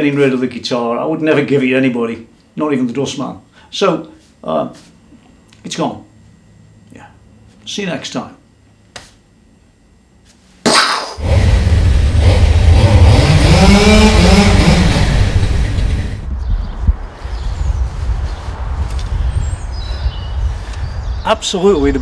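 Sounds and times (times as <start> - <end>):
chainsaw engine running: 11.2 - 16.2.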